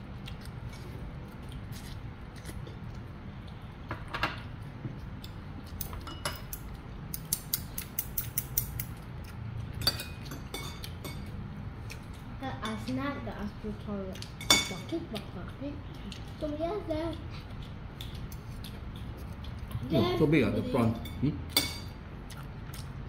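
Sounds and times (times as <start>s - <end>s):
low steady hum: 0.0s - 23.0s.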